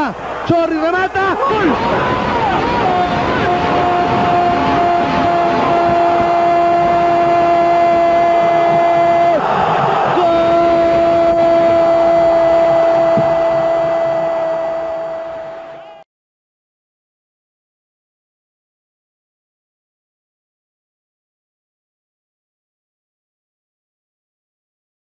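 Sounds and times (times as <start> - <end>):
commentator shouting long held goal: 0.0 - 16.0
crowd noise: 0.0 - 16.0.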